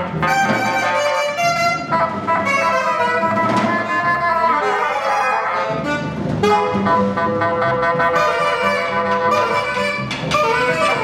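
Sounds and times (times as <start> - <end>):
alto saxophone: 0.0 - 11.0
bassoon: 0.0 - 11.0
double bass: 0.0 - 11.0.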